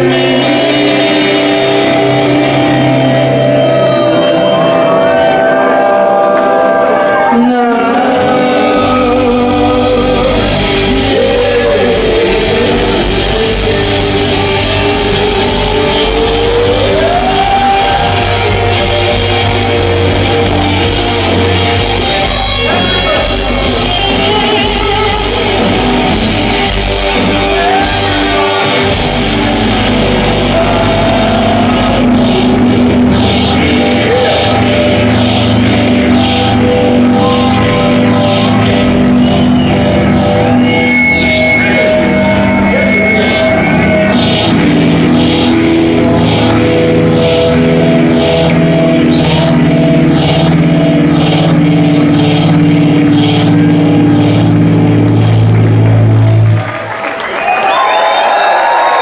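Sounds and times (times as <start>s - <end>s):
crowd shouting and cheering: 0.0s - 59.0s
distorted electric guitar: 0.0s - 59.0s
punk rock band playing: 0.0s - 59.0s.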